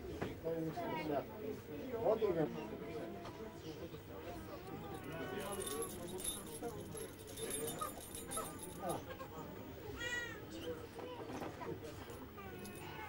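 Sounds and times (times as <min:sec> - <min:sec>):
people talking indistinctly: 0:00.6 - 0:13.0.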